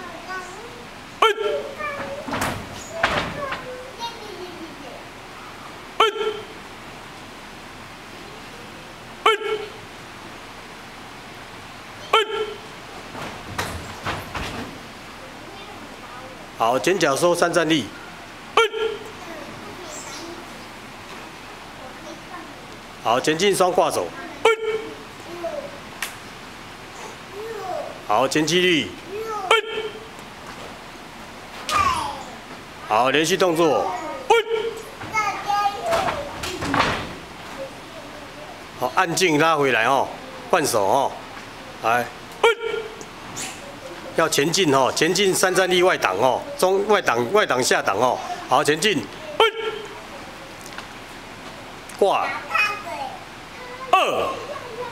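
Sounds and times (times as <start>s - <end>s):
person shouting short calls: 1.2s - 1.8s, 6.0s - 6.6s, 9.2s - 9.8s, 12.0s - 12.7s, 18.6s - 19.2s, 24.4s - 25.0s, 29.4s - 30.1s, 34.2s - 34.8s, 42.4s - 43.0s, 49.4s - 50.0s, 53.9s - 54.5s.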